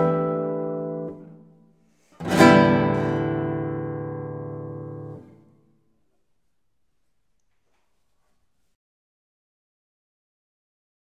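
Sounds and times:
classical guitar chords: 0.0s - 5.6s.

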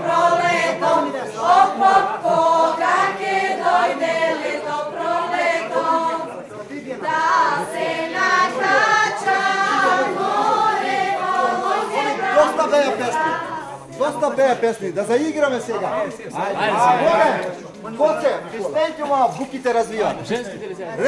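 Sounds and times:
women singing folk song: 0.0s - 6.4s, 7.0s - 13.8s.

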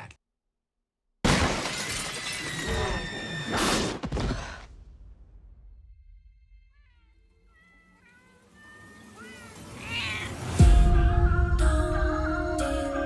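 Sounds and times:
cats meowing: 7.4s - 10.6s.

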